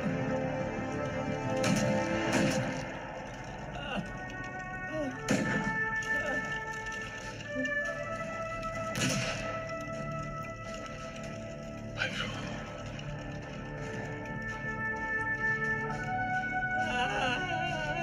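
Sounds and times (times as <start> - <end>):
film score with sustained notes: 0.0 - 18.0
sharp rifle shots: 9.0 - 9.5.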